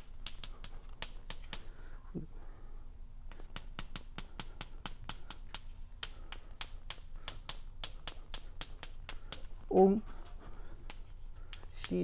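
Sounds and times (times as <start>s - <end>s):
chalk tapping and scraping on blackboard: 0.0s - 1.8s, 3.3s - 12.0s.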